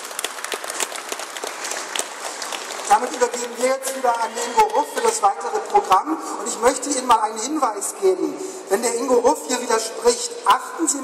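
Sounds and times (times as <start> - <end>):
audience applauding: 0.0 - 5.1
man's voice: 2.9 - 11.0.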